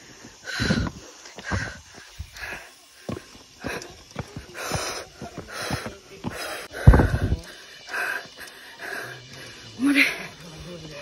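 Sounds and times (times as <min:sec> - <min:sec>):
woman breathing hard: 0:00.0 - 0:10.3.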